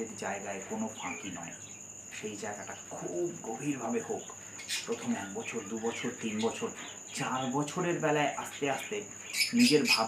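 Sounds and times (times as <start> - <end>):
cricket trilling: 0.0 - 10.0
man speaking: 0.0 - 10.0.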